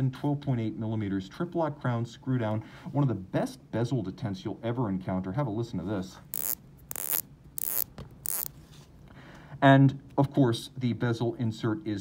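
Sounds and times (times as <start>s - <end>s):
watch bezel ratcheting clicks: 6.4s - 8.5s.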